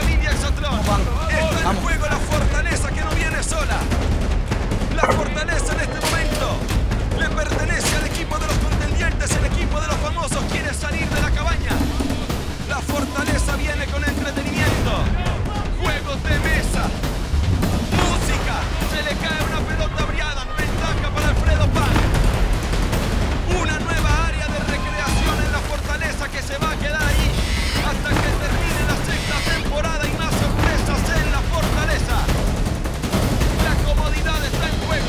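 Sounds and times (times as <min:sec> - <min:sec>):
background music: 0:00.0 - 0:35.0
people shouting: 0:05.0 - 0:06.7, 0:19.9 - 0:21.1.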